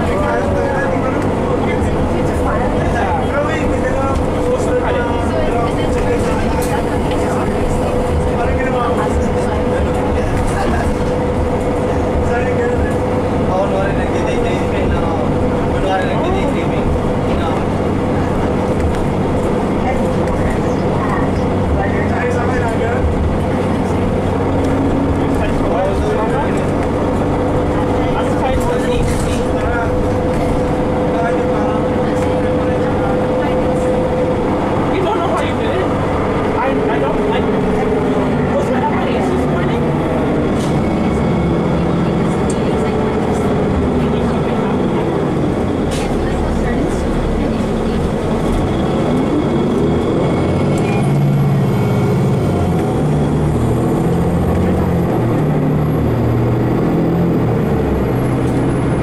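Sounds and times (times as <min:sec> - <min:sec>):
bus drivetrain drone: 0:00.0 - 0:59.0
road noise: 0:00.0 - 0:59.0.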